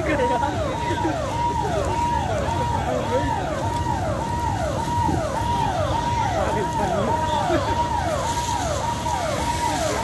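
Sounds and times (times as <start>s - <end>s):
steady rushing noise: 0.0s - 10.0s
electronic siren cycling: 0.2s - 10.0s.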